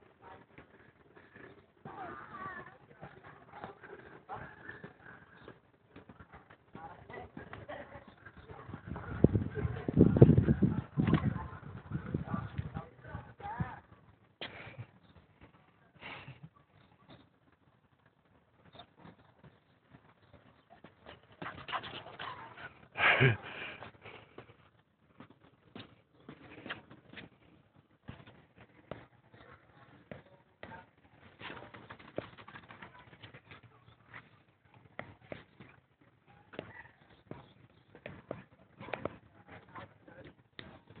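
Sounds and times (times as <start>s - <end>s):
dog footsteps on concrete: 16.4s - 22.9s, 23.8s - 41.0s.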